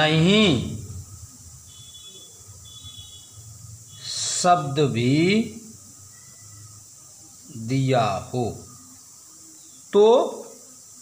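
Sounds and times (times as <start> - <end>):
low steady hum: 0.0 - 9.8.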